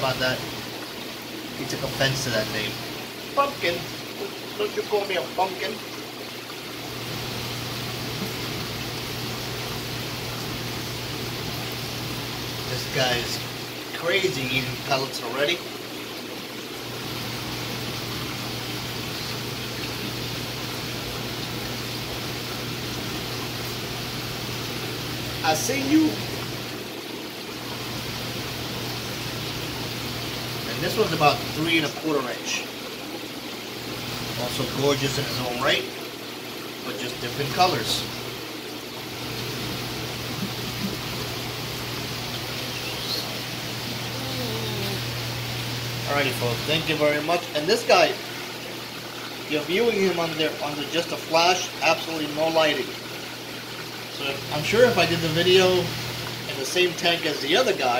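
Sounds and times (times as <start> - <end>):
circulating water rushing: 0.0 - 57.9
low pump hum: 0.0 - 57.9.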